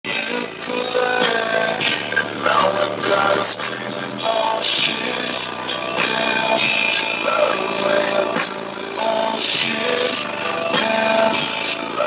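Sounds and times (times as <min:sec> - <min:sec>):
bass-heavy music through car subwoofers: 0:00.1 - 0:12.0.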